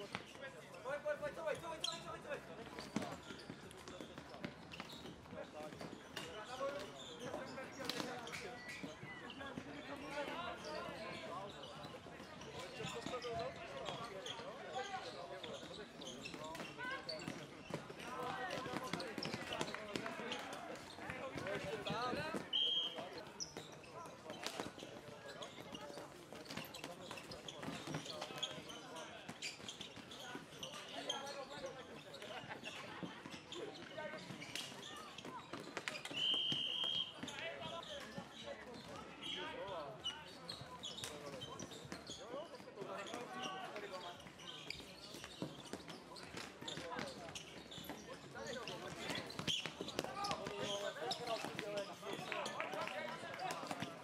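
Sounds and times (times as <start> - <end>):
players calling and shouting: 0.0 - 54.0
whistle blowing: 22.5 - 23.0, 36.1 - 37.2.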